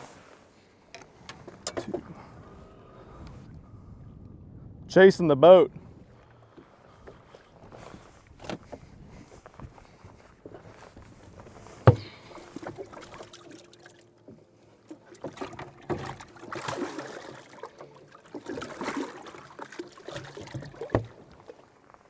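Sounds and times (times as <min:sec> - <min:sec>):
water splashing: 0:11.6 - 0:21.8.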